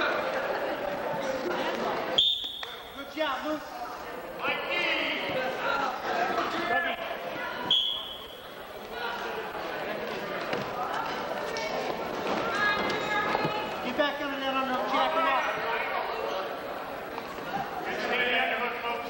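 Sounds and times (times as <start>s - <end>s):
spectators shouting and talking: 0.0s - 19.0s
referee's whistle blast: 2.2s - 3.0s, 7.6s - 8.6s.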